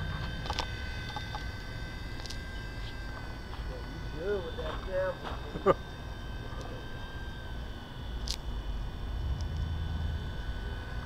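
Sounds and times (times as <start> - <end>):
low rumble: 0.0 - 1.6, 8.6 - 11.0
rc helicopter rotor whine: 0.0 - 11.0.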